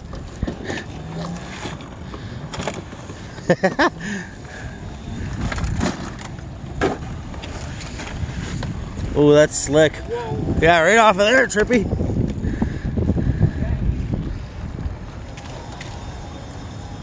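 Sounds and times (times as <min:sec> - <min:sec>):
bursts of laughter: 0:03.2 - 0:04.4
wind rushing over microphone: 0:03.7 - 0:17.0.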